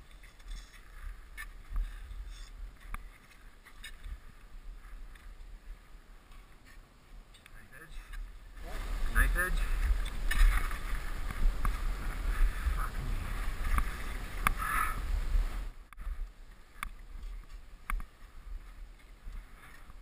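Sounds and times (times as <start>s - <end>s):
wind buffeting microphone: 8.2s - 20.0s.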